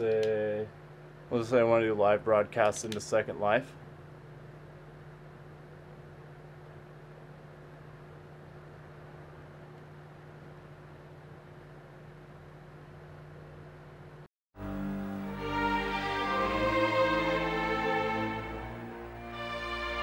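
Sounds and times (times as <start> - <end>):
low hum with soft hiss: 0.0 - 20.0
string music: 14.6 - 20.0.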